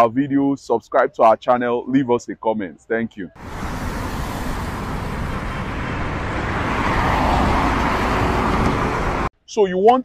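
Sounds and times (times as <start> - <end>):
rushing whoosh effect: 3.4 - 9.3.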